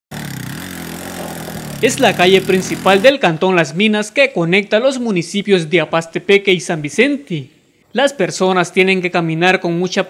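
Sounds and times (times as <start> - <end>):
small motorcycle engine running: 0.1 - 3.2.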